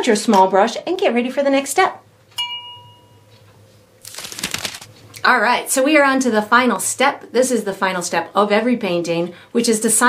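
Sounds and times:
glass clink ringing: 2.4s - 3.3s.

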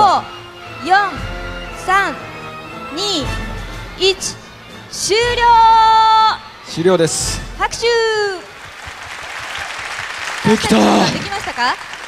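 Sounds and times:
audience applauding: 8.5s - 12.0s.

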